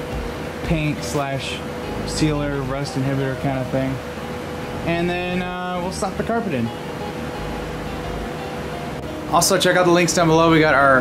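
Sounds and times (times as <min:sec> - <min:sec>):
electric fan whirring: 0:00.0 - 0:11.0.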